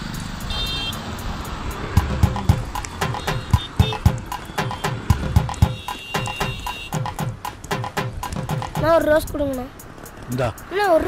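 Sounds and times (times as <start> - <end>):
sharp clicks: 1.3 - 10.4
drum hits falling in pitch: 1.9 - 9.6
high held tone: 2.0 - 7.2.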